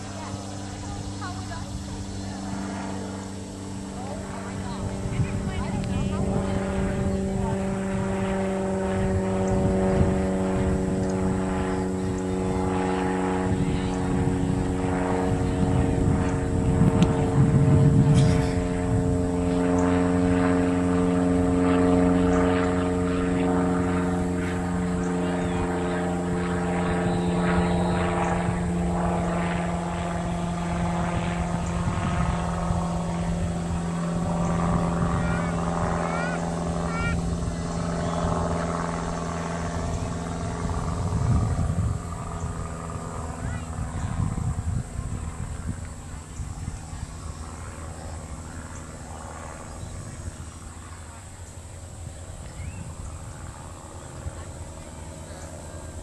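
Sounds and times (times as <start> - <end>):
engine drone: 0.0 - 56.0
faint voices: 0.0 - 56.0.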